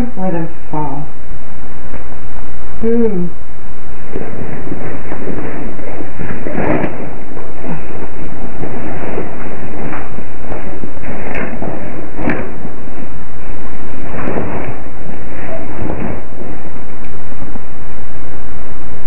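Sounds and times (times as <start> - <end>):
loud steady microphone hiss: 0.0 - 19.0
knocks and thuds: 6.2 - 7.9, 8.6 - 12.6, 14.1 - 14.8.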